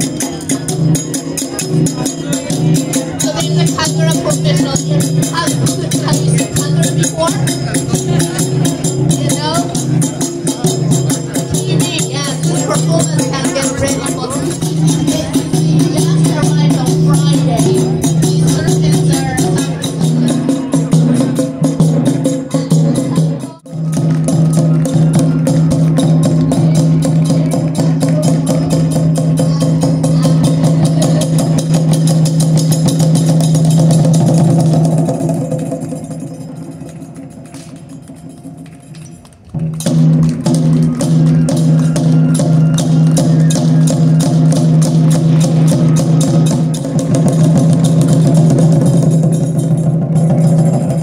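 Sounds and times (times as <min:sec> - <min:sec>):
taiko drum rapid beat: 0:00.0 - 0:38.6, 0:39.5 - 0:51.0.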